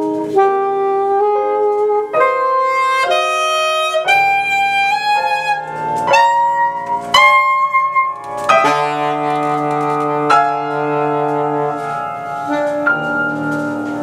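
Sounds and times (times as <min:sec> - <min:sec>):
alto saxophone: 0:00.0 - 0:14.0
piano chords: 0:00.0 - 0:14.0.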